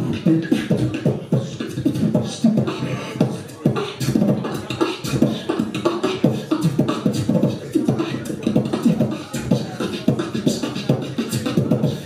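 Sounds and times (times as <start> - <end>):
beatboxing into a microphone: 0.0 - 12.0.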